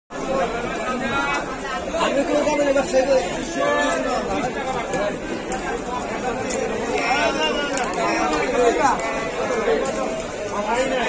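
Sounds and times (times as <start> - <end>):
market chatter: 0.1 - 11.0.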